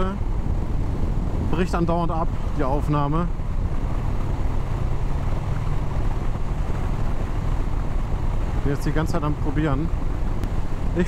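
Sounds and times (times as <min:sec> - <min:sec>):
motorcycle engine cruising: 0:00.0 - 0:11.0
wind rushing over microphone: 0:00.0 - 0:11.0.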